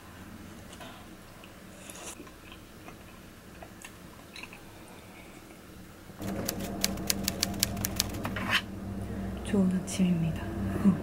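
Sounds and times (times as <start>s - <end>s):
low steady room hum: 0.0s - 11.0s
typewriter key clicks: 6.2s - 8.3s.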